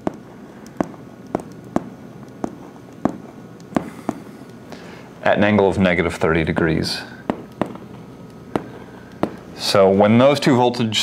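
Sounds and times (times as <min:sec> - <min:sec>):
pen tapping on whiteboard: 0:00.0 - 0:04.2.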